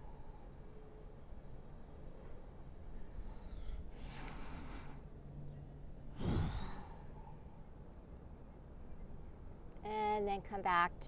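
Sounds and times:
woman breathing audibly: 0.0s - 1.0s, 2.9s - 5.2s, 6.1s - 7.7s.

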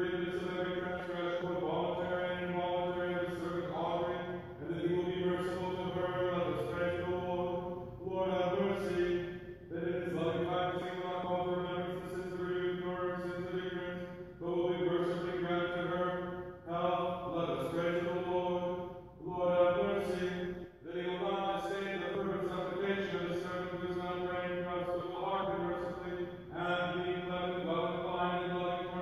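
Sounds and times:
man chanting prayers: 0.0s - 29.0s.

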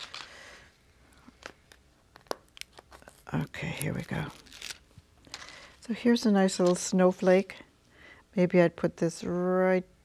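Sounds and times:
paper sticker sheet rustling: 2.2s - 5.6s, 6.4s - 7.4s.

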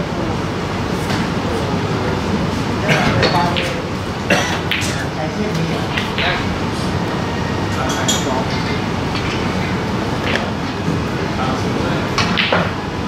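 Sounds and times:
murmur of voices: 0.0s - 12.5s
snooker balls clicking: 12.2s - 12.8s.

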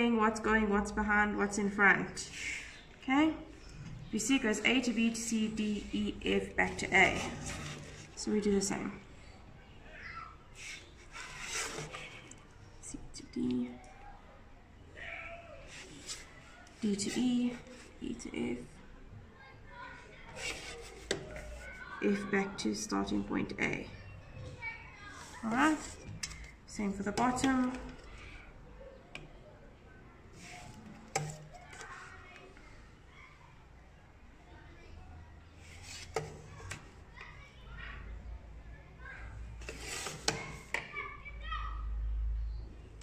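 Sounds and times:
children chattering faintly: 0.9s - 43.0s.

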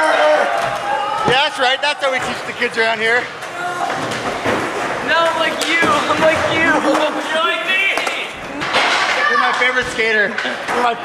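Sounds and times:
large indoor room noise: 0.0s - 11.0s
man speaking: 5.0s - 8.4s.

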